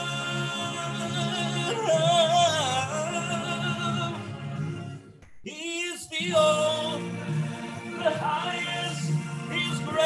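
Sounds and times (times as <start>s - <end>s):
man singing with vibrato: 0.0s - 10.0s.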